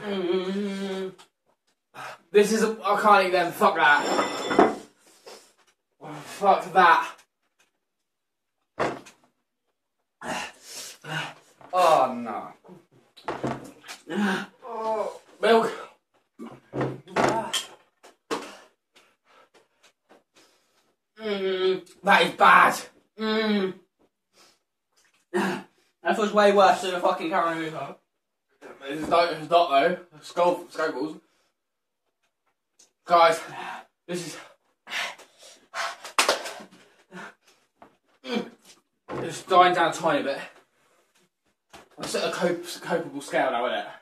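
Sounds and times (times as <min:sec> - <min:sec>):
man moaning and gasping: 0:00.0 - 0:01.2, 0:10.2 - 0:12.0, 0:14.1 - 0:17.6, 0:38.2 - 0:38.6.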